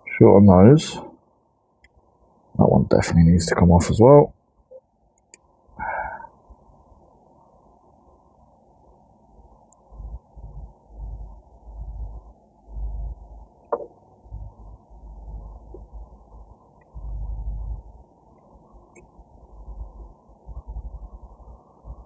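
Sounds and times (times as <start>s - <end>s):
low rumbling bursts: 14.2s - 22.0s.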